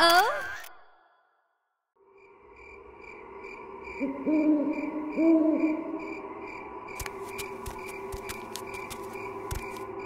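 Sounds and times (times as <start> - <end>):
night ambience: 0.6 - 10.0
cartoon owl hooting: 4.0 - 6.1.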